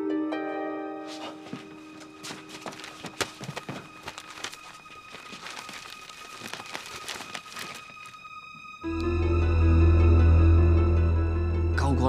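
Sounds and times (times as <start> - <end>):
paper rustling: 1.1 - 8.2.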